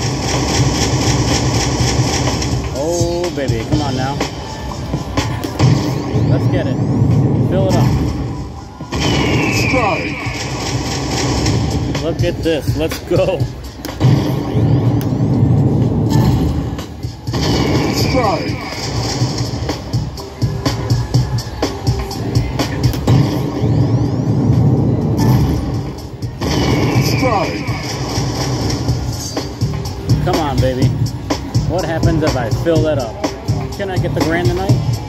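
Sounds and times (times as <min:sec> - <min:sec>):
steady low rumble: 0:00.0 - 0:35.0
slot machine sound effects: 0:05.2 - 0:15.3, 0:15.9 - 0:19.7, 0:23.1 - 0:29.4.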